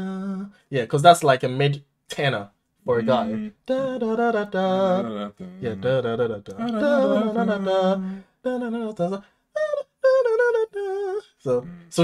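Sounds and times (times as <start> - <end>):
low singing voice: 2.8 - 12.0.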